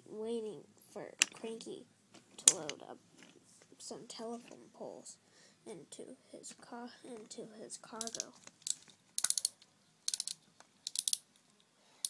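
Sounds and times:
toy railway pieces clattering: 2.4 - 3.4, 8.0 - 11.2.

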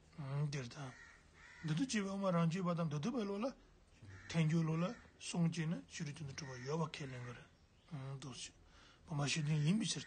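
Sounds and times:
man speaking: 4.3 - 10.0.

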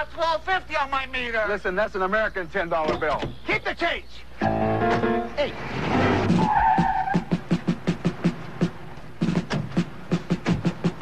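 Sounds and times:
car tyres squealing: 4.4 - 7.5
music with a fast beat: 7.2 - 11.0.

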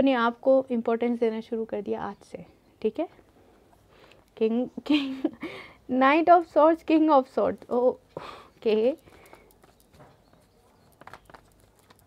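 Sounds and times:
card deck shuffling: 9.1 - 12.0.

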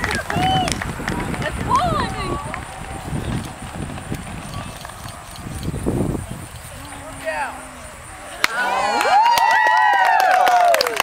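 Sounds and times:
wind rumbling on microphone: 0.0 - 8.4
faint voices: 0.0 - 9.1.

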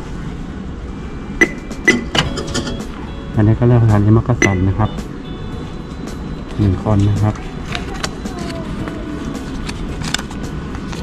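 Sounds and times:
low rumble of station noise: 0.0 - 11.0.

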